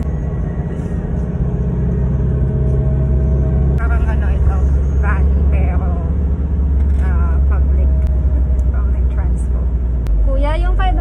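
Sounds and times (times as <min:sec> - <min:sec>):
van engine rumble: 0:00.0 - 0:11.0.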